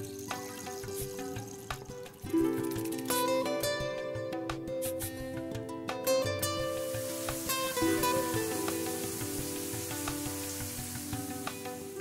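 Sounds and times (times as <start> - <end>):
soft background music: 0.0 - 12.0
shower water hissing: 6.7 - 12.0.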